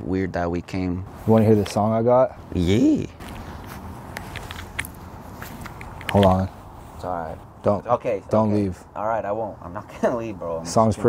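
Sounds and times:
faint outdoor background noise: 0:00.0 - 0:11.0
handling clicks and rustles: 0:01.2 - 0:02.0, 0:02.6 - 0:07.4.

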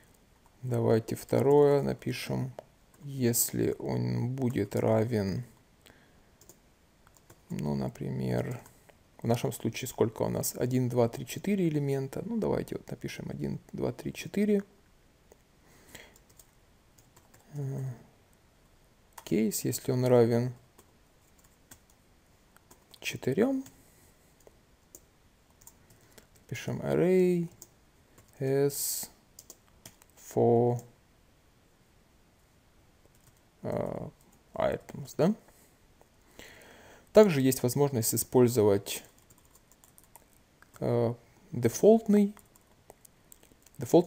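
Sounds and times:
faint keyboard keystrokes: 0:06.4 - 0:07.6.

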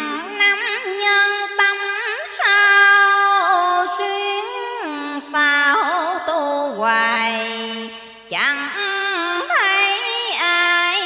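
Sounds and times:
woman chanting scripture: 0:00.0 - 0:11.0.

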